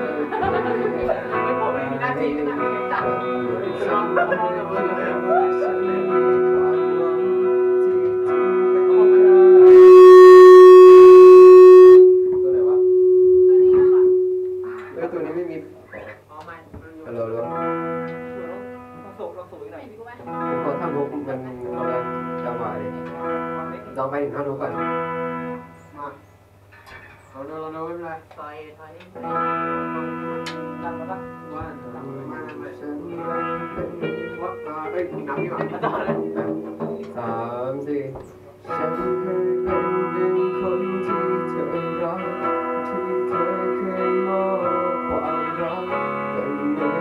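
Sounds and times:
electric guitar chords strummed: 0.0s - 15.9s, 29.2s - 37.6s, 38.6s - 47.0s
electric guitar held note: 5.0s - 15.8s, 38.7s - 43.0s.

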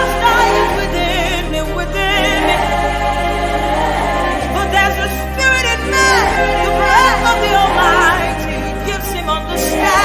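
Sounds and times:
low bass notes: 0.0s - 10.0s
women's choir singing: 0.0s - 10.0s.

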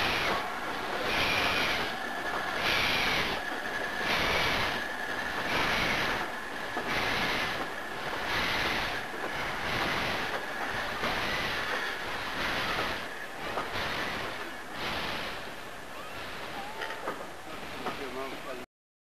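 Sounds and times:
steam locomotive chuffing: 0.0s - 18.7s.

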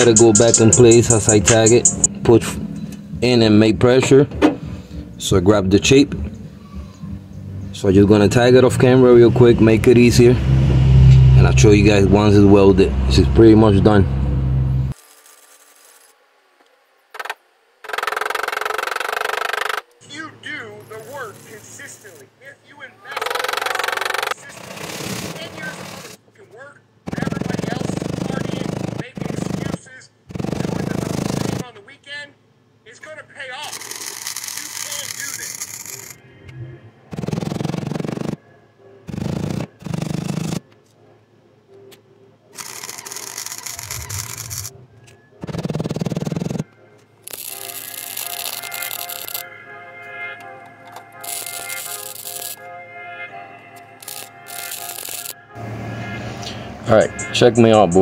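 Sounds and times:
background music with singing: 0.0s - 2.1s, 52.6s - 54.2s, 55.9s - 58.0s
welder crackling: 0.0s - 2.1s, 33.6s - 36.2s, 42.6s - 44.7s, 47.2s - 49.4s, 51.2s - 52.6s, 54.0s - 55.4s.

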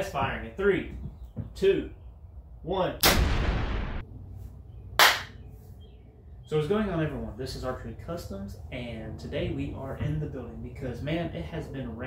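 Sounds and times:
loud blast: 3.0s - 4.0s
sharp hand clap: 5.0s - 5.4s.

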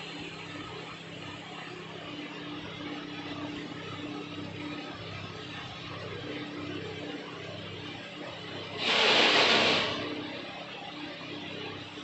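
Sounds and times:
steady low hum: 0.0s - 12.0s
hot air hiss: 8.8s - 10.0s.

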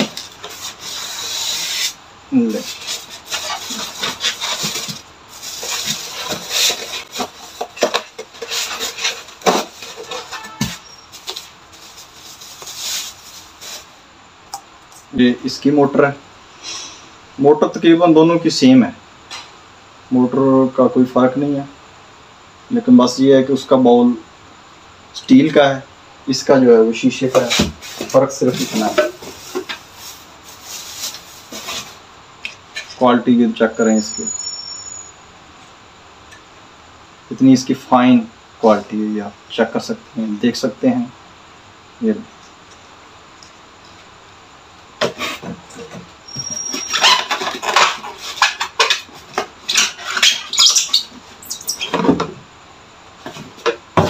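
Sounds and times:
foam scraping against cardboard: 0.0s - 14.0s, 27.3s - 32.0s, 45.0s - 51.1s
foam squeaks: 0.7s - 13.8s, 46.2s - 49.0s, 49.7s - 52.0s.

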